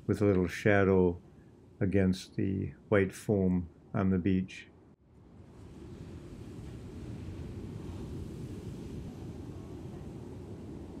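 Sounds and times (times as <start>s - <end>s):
seaside wind: 0.0s - 11.0s
surf: 5.3s - 11.0s.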